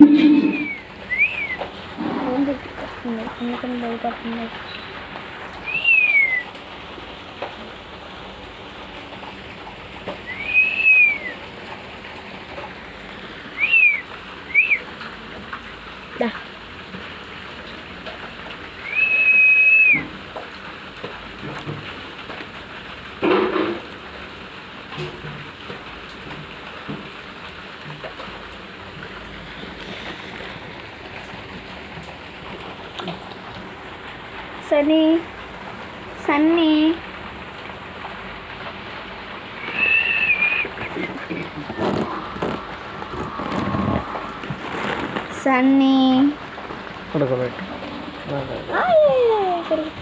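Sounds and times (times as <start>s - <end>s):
high whistled notes: 0.0s - 1.6s, 5.6s - 6.5s, 10.3s - 11.4s, 13.6s - 14.8s, 18.8s - 20.1s, 39.6s - 44.6s
noisy burst: 0.0s - 2.6s, 39.5s - 45.5s
steady hiss: 26.0s - 34.5s, 36.9s - 50.0s.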